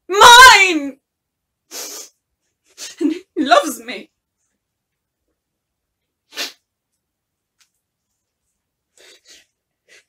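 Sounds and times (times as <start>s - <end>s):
woman's sharp nasal breath: 1.7s - 2.2s, 6.3s - 6.6s.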